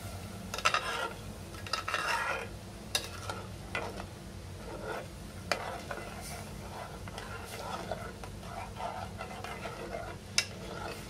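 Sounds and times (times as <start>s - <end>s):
steady low hum: 0.0s - 11.0s
metal spoon scraping a pot: 0.5s - 11.0s.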